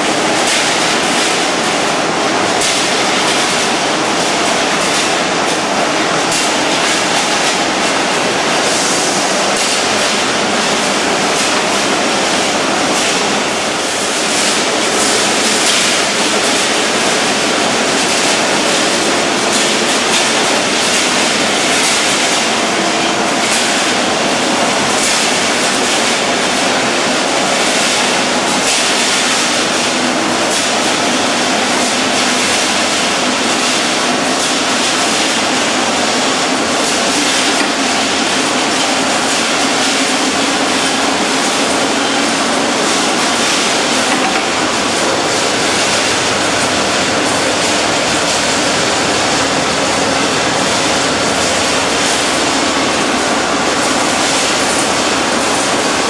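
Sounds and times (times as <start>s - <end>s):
wire-processing machinery clatter: 0.0s - 56.0s.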